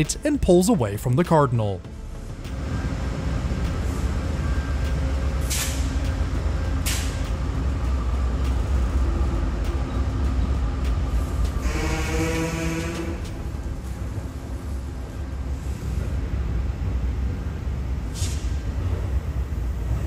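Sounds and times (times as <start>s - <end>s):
diesel locomotive rumble: 0.0s - 20.0s
short air hisses: 5.4s - 5.9s, 18.1s - 18.6s.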